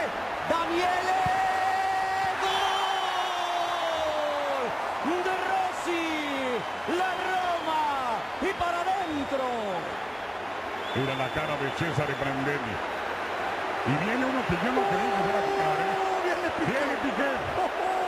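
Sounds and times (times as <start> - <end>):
stadium crowd noise: 0.0 - 18.0
commentator shouting: 13.9 - 18.0.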